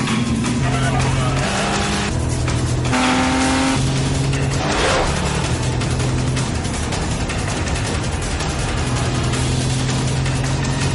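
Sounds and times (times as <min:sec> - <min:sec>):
car engine speeding: 0:00.0 - 0:10.9
dramatic film score: 0:00.0 - 0:10.9.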